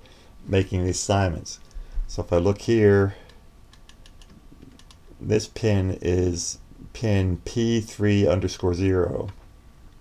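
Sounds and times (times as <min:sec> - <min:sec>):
computer input clicks: 0:03.7 - 0:05.0.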